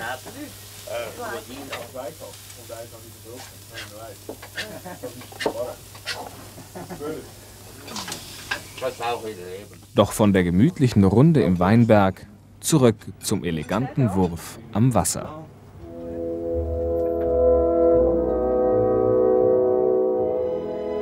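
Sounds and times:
steady low hum: 15.8 - 20.4.

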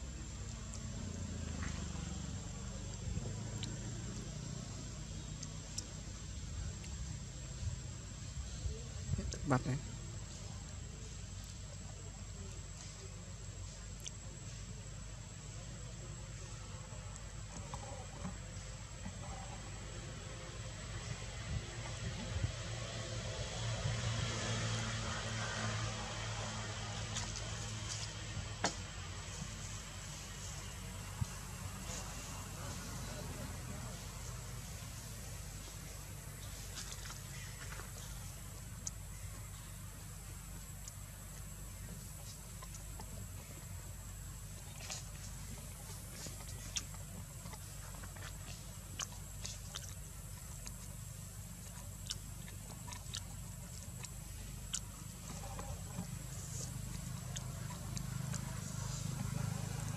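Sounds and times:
continuous low rumble: 0.0 - 59.9.

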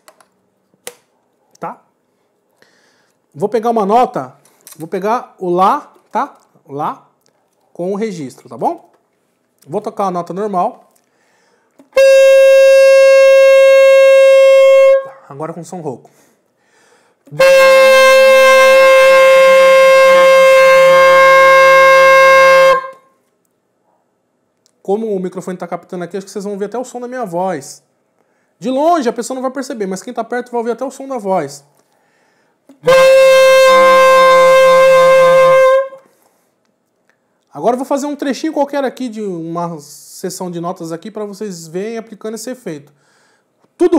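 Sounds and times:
saxophone holding a note: 12.0 - 15.2, 17.3 - 23.1, 32.8 - 36.1.

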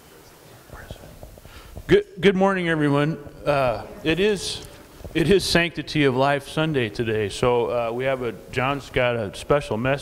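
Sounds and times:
faint whispered voices: 0.0 - 1.4.

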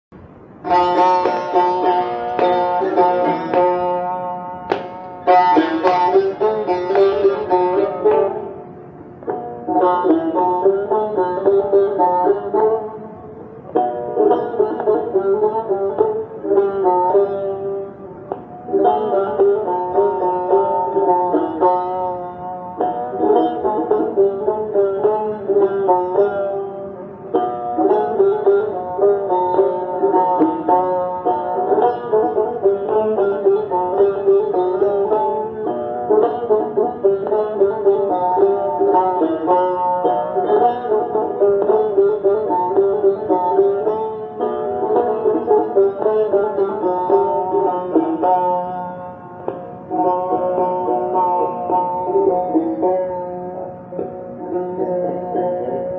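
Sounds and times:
plucked lute melody: 0.2 - 55.9.

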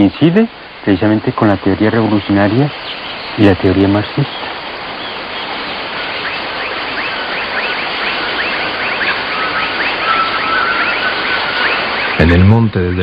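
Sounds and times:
steady forest hiss: 0.0 - 13.0.

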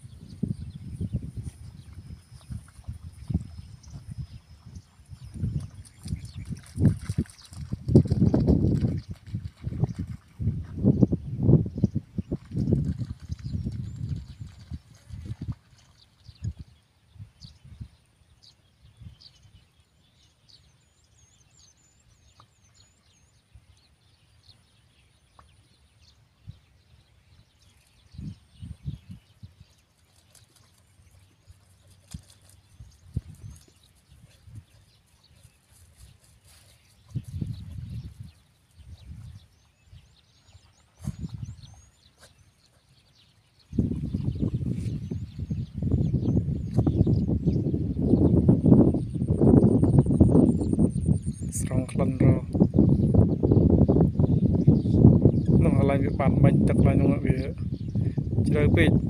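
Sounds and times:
faint high bird chirps: 0.0 - 10.2
low rumbling on microphone: 0.0 - 15.6, 36.8 - 42.0, 43.0 - 59.0.

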